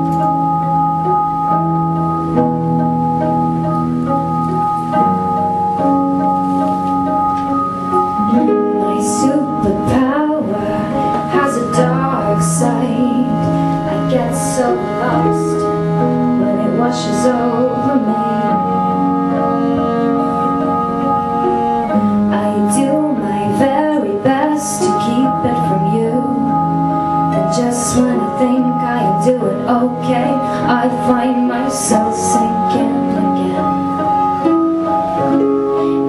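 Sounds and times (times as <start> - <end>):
organ-like keyboard chords: 0.0 - 36.0
woman singing: 8.2 - 19.1, 22.3 - 26.7, 27.3 - 33.9.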